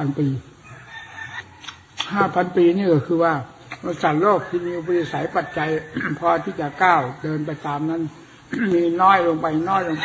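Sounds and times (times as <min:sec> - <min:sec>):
man talking: 0:02.1 - 0:10.0.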